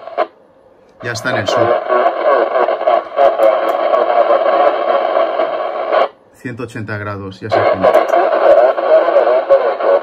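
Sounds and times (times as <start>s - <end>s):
radio static hissing: 0.0s - 0.4s, 1.0s - 6.2s, 7.1s - 10.0s.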